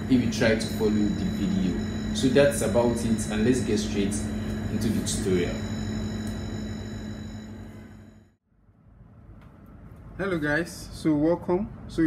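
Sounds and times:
faint high whine: 0.0s - 8.4s
low room hum: 0.0s - 12.0s.

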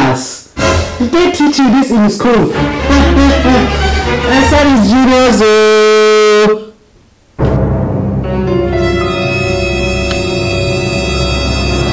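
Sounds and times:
low dark dramatic music: 7.4s - 11.9s
held horn-like note: 8.6s - 11.9s.

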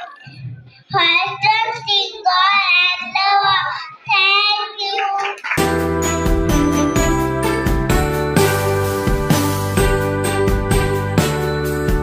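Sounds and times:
children singing unaccompanied: 0.9s - 5.3s.

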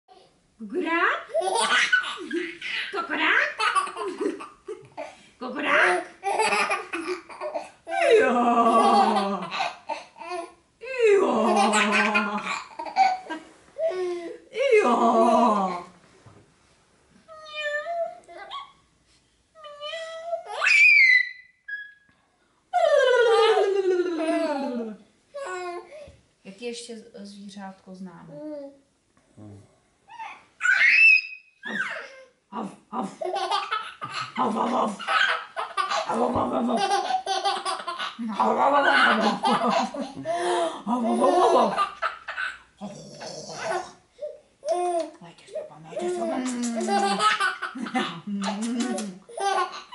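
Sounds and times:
baby laughing: 1.3s - 5.2s, 5.8s - 8.1s, 11.5s - 14.2s, 30.2s - 32.2s, 33.2s - 42.7s, 46.0s - 49.9s.

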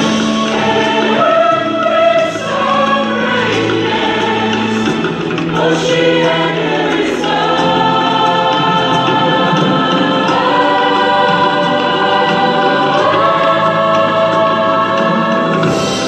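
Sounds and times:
women's choir singing chords: 0.0s - 16.0s.

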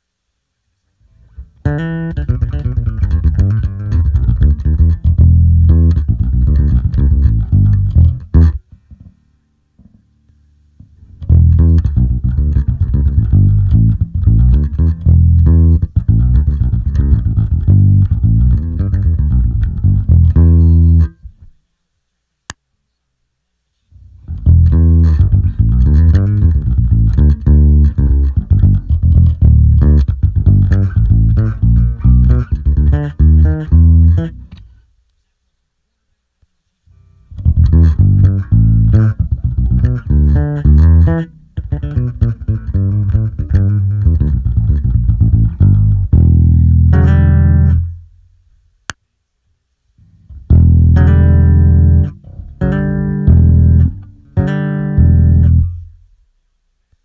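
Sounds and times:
electric bass guitar riffs: 1.0s - 21.5s, 23.9s - 34.9s, 36.9s - 48.4s, 50.0s - 56.2s.

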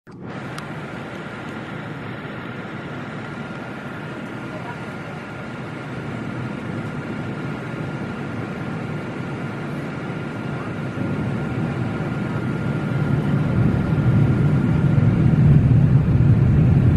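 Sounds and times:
jet cabin airflow and engine drone: 0.1s - 16.9s
thin steady whine: 0.1s - 16.9s.

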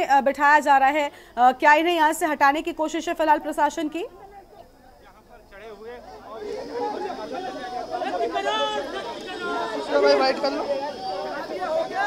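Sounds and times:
crowd voices talking over each other: 3.7s - 12.0s.

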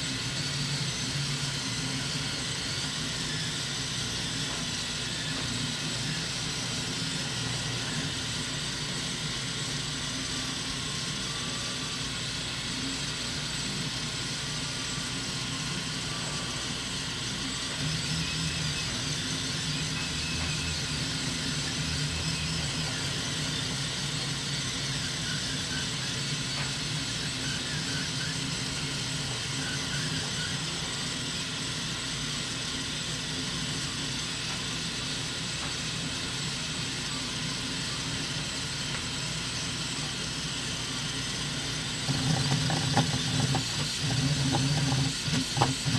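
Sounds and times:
printer motors whirring: 0.0s - 45.9s.

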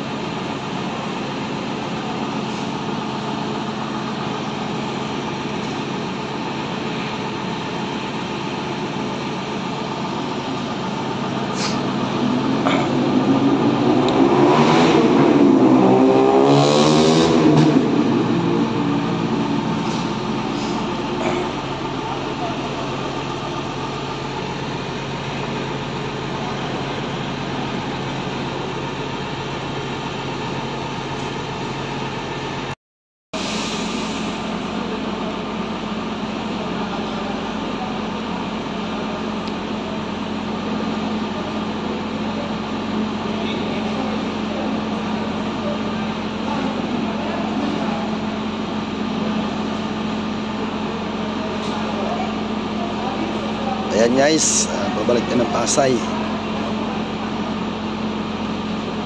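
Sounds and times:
buses idling: 0.0s - 16.6s, 17.3s - 32.8s, 33.4s - 59.0s
vehicle passing by: 11.6s - 20.9s.

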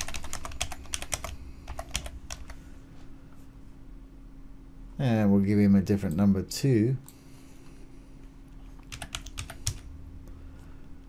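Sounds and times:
keyboard keystrokes: 0.0s - 2.6s, 8.8s - 9.8s.

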